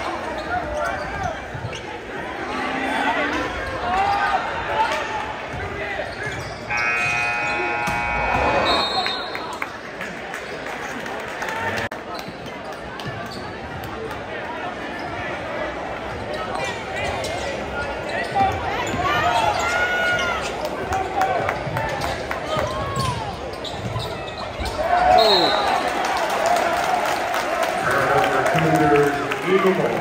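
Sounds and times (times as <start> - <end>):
sneakers squeaking: 0.0 - 2.2, 3.3 - 11.0, 12.0 - 13.8, 14.9 - 15.4, 16.1 - 20.7, 21.6 - 25.8
crowd chatter: 0.0 - 30.0.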